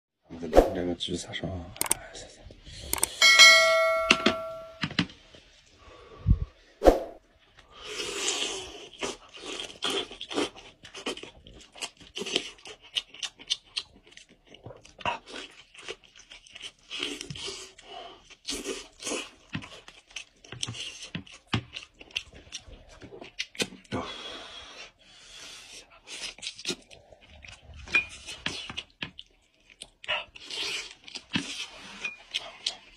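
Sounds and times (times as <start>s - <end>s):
bell-like notification chime: 3.2s - 4.8s
meat chewing and tearing: 8.1s - 24.0s, 24.8s - 32.9s.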